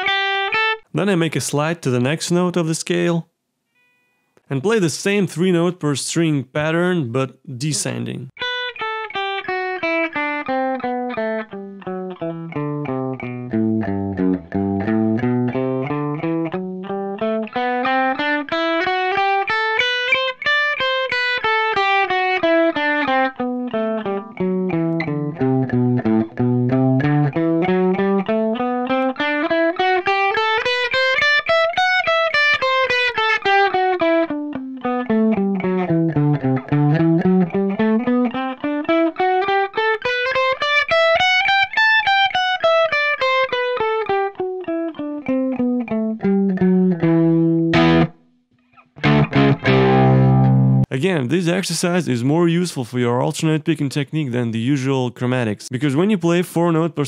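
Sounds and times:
electric guitar playing a scale: 0.0 - 0.8, 7.8 - 50.9.

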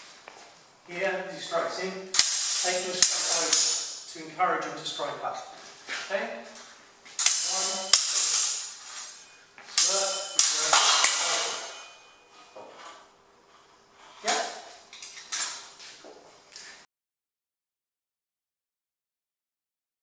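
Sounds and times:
steel swords clashing: 2.2 - 4.1, 7.2 - 12.6.

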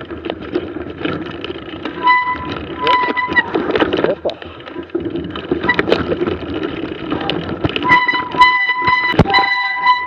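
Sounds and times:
bike rattling and clicking: 0.0 - 10.0
bike brake squealing: 2.0 - 3.7, 5.6 - 6.0, 7.8 - 10.0.

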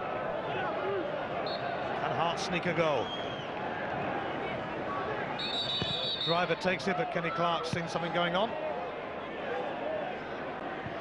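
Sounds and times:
stadium crowd noise: 0.0 - 11.0
referee's whistle blast: 5.4 - 6.4.

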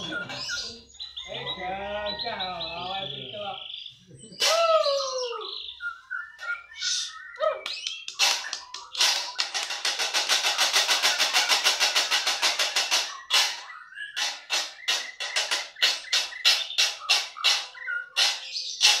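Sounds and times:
sharp bird notes: 0.0 - 19.0
songbirds singing: 0.0 - 19.0
whistled gliding bird phrases: 0.0 - 19.0
fast bird rattle: 7.7 - 19.0.

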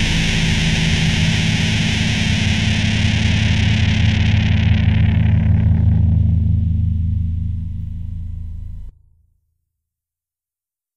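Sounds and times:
cymbal wash: 0.0 - 5.2
distorted guitar chord ringing: 0.0 - 9.0.

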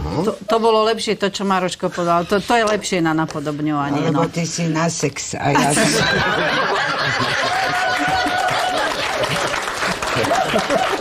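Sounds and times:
laughter: 5.6 - 11.0
applause: 7.2 - 11.0.

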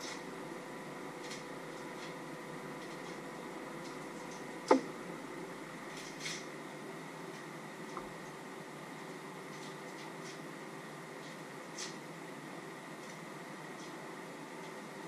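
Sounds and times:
low hum and hiss: 0.0 - 15.0.

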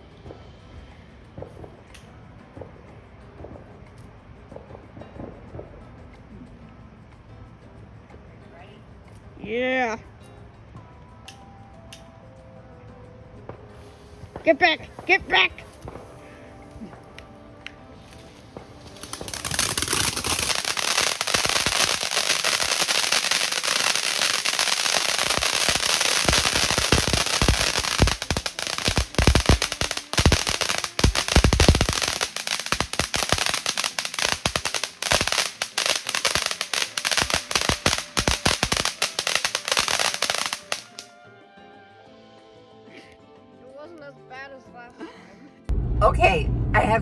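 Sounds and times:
firework pops: 16.9 - 41.0
firework fountain hissing and crackling: 18.0 - 41.1.

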